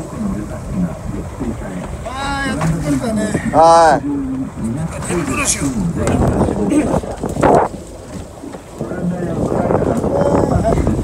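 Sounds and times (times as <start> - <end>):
low boat rumble: 0.0 - 11.0
wind buffeting microphone: 0.0 - 11.0.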